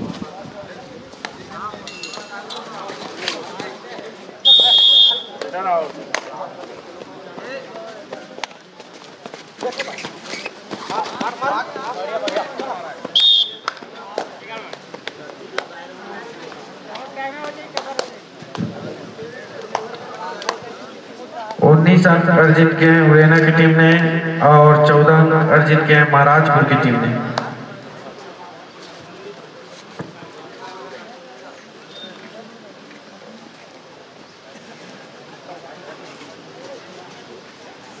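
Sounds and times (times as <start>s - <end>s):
referee's whistle blast: 4.4s - 5.4s, 13.1s - 13.7s.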